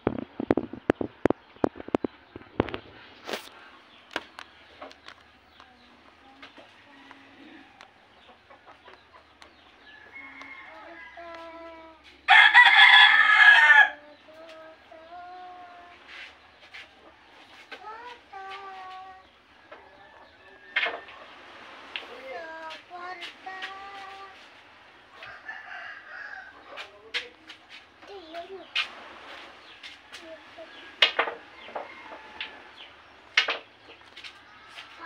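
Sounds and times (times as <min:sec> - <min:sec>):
rooster crowing: 0:09.9 - 0:14.1, 0:25.1 - 0:26.6, 0:30.7 - 0:32.9.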